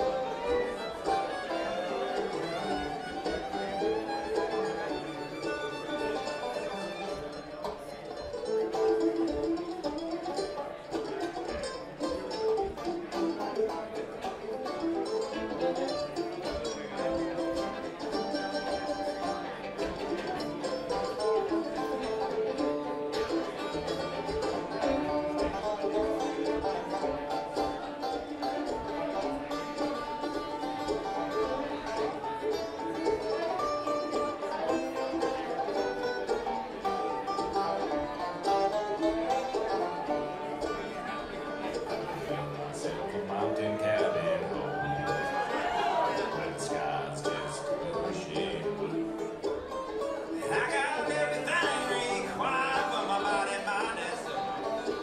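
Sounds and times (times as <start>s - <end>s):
acoustic guitar: 0.0s - 55.0s
banjo: 0.0s - 55.0s
fiddle: 0.0s - 55.0s
mandolin: 0.0s - 55.0s
upright bass: 5.8s - 55.0s.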